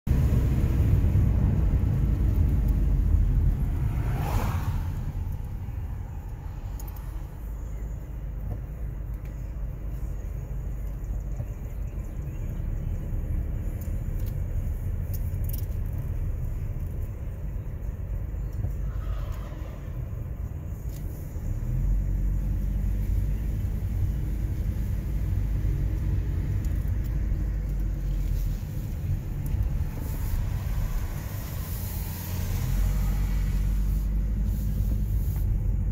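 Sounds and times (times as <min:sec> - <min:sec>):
car engine rumble inside cabin: 0:00.0 - 0:35.9.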